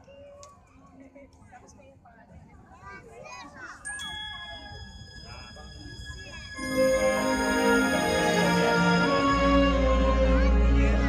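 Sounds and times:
children chattering: 2.6s - 11.0s
held musical chord of high tones: 3.9s - 11.0s.

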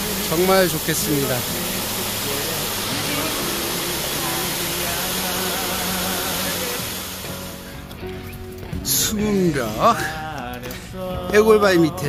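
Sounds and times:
stream water rushing: 0.0s - 8.3s
song playing: 0.0s - 12.0s.

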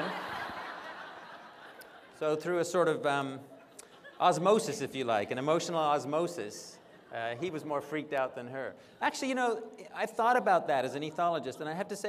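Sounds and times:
audience laughing: 0.0s - 2.4s, 3.5s - 4.8s.

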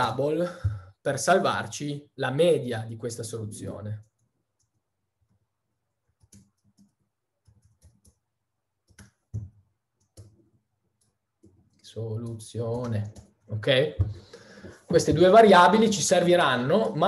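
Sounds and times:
computer keyboard keys clicking: 6.2s - 8.2s.

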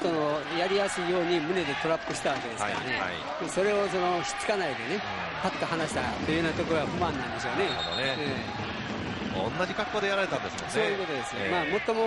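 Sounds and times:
man commentating: 0.0s - 8.6s, 9.4s - 12.0s
broadcast background noise: 0.0s - 12.0s.

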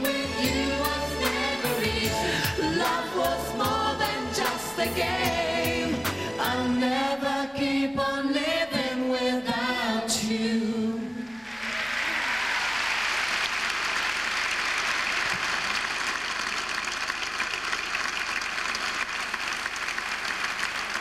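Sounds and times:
audience applauding: 11.4s - 21.0s.

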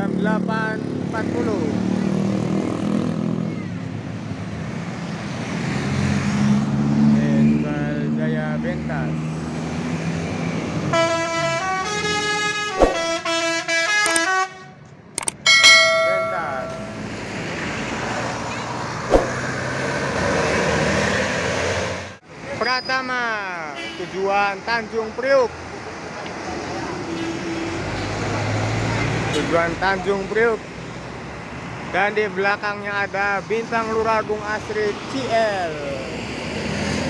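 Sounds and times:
multi-tone bus horn: 10.9s - 14.8s, 27.0s - 28.0s.

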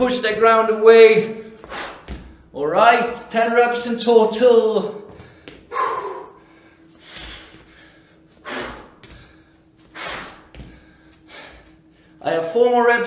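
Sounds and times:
feet thudding on rubber floor: 1.5s - 3.2s, 5.0s - 5.8s, 6.9s - 11.8s
man breathing out hard: 5.1s - 12.2s.

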